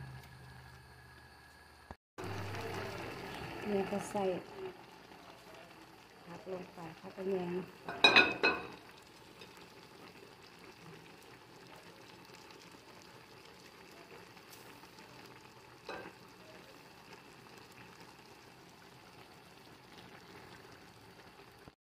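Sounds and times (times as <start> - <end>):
pot simmering: 0.0 - 21.8
spoon and dish clattering on pot: 7.9 - 8.8.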